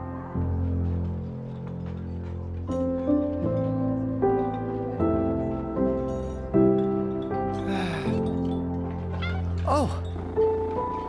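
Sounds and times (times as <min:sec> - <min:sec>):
soft background music: 0:00.0 - 0:11.0
kitten meowing: 0:09.2 - 0:10.0.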